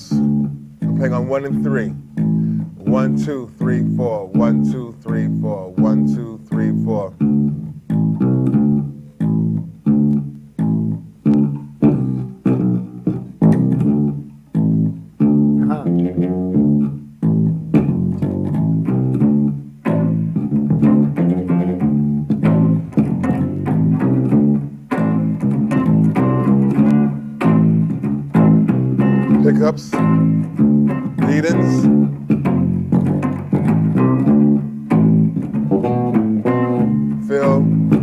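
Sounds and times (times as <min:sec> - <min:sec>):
electric bass played fingerstyle: 0:00.0 - 0:38.0.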